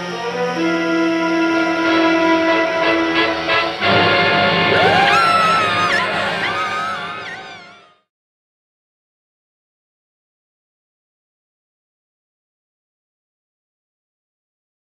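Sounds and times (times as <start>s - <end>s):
dramatic horror film score: 0.0s - 8.0s
man and woman screaming: 4.7s - 8.0s.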